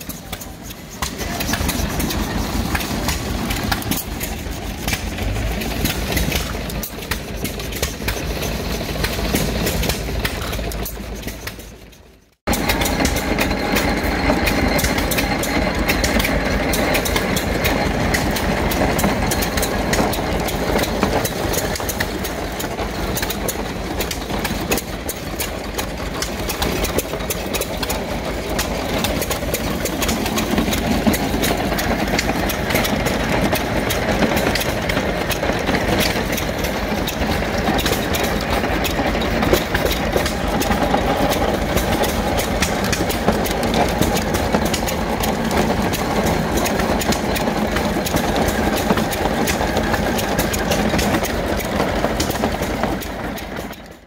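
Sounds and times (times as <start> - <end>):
corn sheller clattering: 0.0 - 54.0
gas engine running: 0.0 - 54.0.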